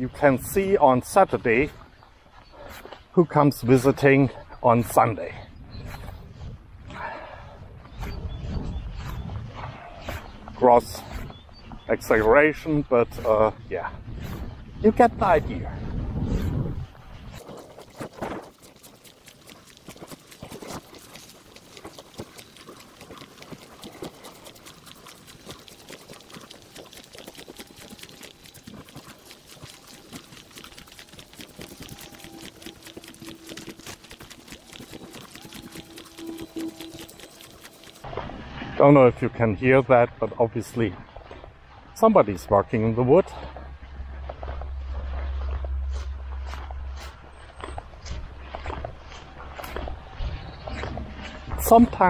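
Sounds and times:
steady low rumble: 4.3s - 18.2s, 29.8s - 52.0s
footsteps on grass: 16.9s - 38.2s, 43.4s - 51.5s.

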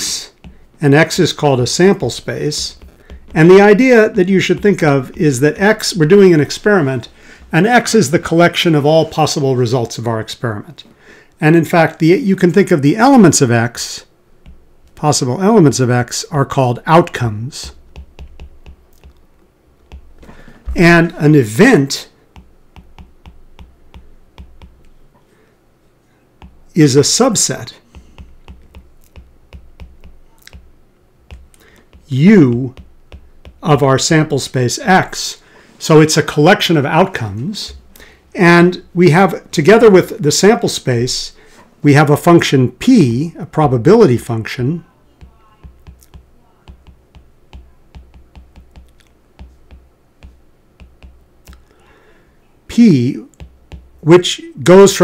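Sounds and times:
stylus tapping on glass screen: 0.4s - 0.7s, 2.1s - 5.7s, 14.4s - 15.0s, 17.6s - 20.5s, 22.3s - 25.0s, 26.4s - 26.7s, 27.9s - 33.7s, 45.2s - 51.8s, 53.3s - 54.0s.

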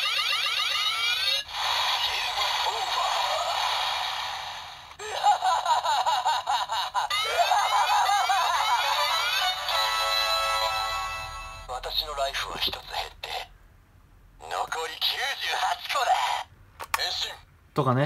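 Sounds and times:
toy music: 0.0s - 1.5s, 8.6s - 11.8s
toy electronic sound effects: 0.0s - 4.6s, 8.8s - 11.7s
recorded character voice: 11.7s - 13.5s, 14.4s - 17.5s.

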